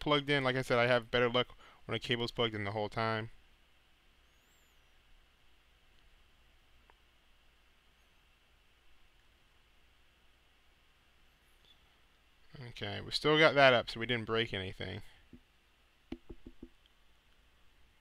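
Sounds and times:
faint hiss: 0:00.0 - 0:18.0
faint high chirps: 0:04.2 - 0:05.1, 0:11.6 - 0:12.0.

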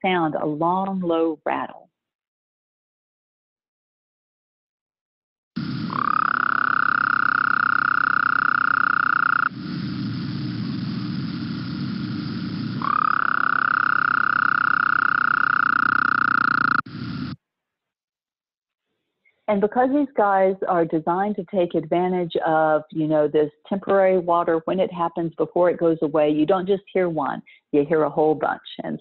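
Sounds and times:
toad trilling rattle call: 0:05.9 - 0:09.5, 0:12.8 - 0:16.9.

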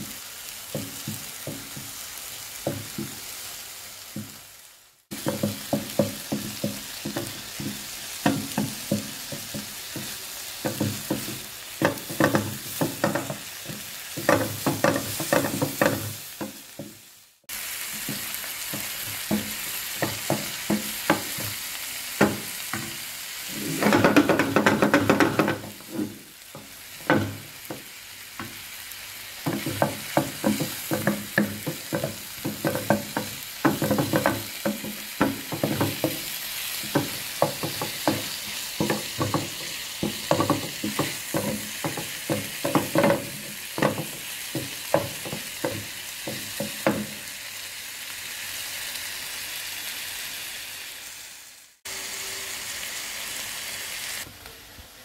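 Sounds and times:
food sizzling in a frying pan: 0:00.0 - 0:55.0
spatula scraping a pan: 0:22.3 - 0:28.6, 0:29.5 - 0:45.9.

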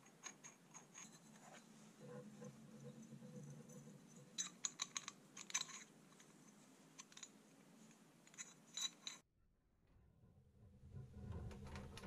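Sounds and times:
light metallic clicks and clinks: 0:00.0 - 0:01.4, 0:02.4 - 0:09.3.

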